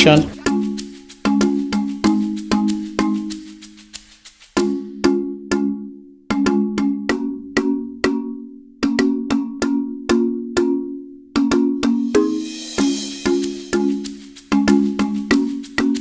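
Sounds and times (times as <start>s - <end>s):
cowbell-like percussive music: 0.0s - 16.0s.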